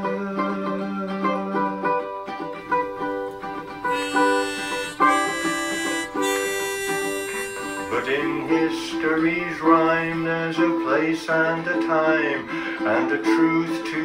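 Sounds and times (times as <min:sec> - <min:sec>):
ukulele playing: 0:00.4 - 0:13.8
sustained bright melody notes: 0:02.8 - 0:10.0
held sung note: 0:03.6 - 0:10.3.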